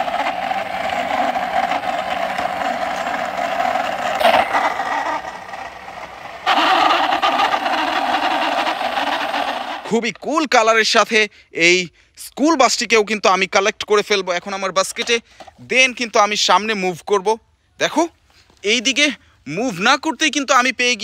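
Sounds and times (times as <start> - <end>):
toy bus rolling on concrete: 0.0 - 11.1, 12.6 - 16.7.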